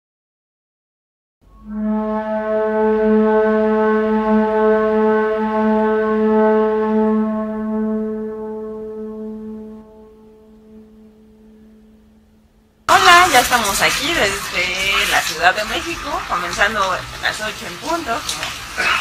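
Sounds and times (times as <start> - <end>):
sustained low note: 1.4 - 12.9.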